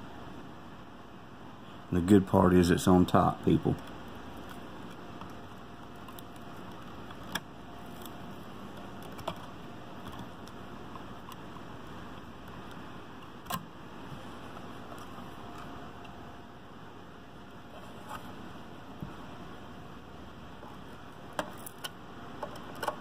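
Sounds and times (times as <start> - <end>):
steady background hiss: 0.0 - 23.0.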